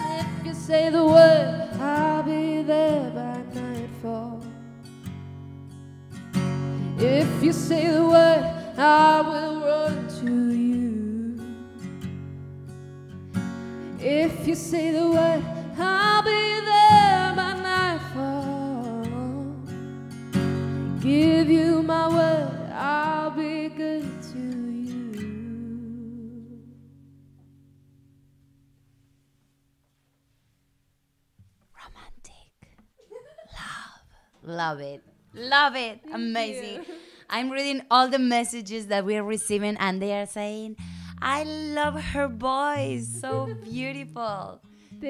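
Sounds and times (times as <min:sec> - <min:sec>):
woman singing: 0:00.0 - 0:04.6, 0:07.0 - 0:11.7, 0:13.9 - 0:19.7, 0:21.0 - 0:26.8, 0:35.4 - 0:44.6
acoustic guitar: 0:00.0 - 0:45.0
person speaking: 0:34.4 - 0:37.8.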